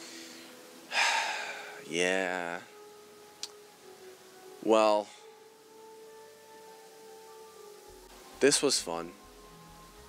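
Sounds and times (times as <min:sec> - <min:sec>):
man breathing loudly: 0:00.0 - 0:01.8
faint steady hum: 0:00.0 - 0:08.5.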